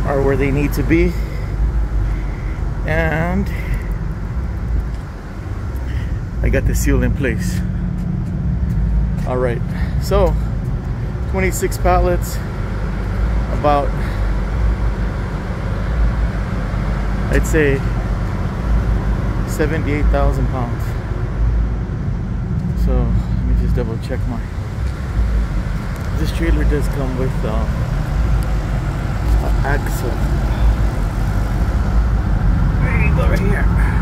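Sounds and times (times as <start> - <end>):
diesel truck idling: 0.0 - 34.0.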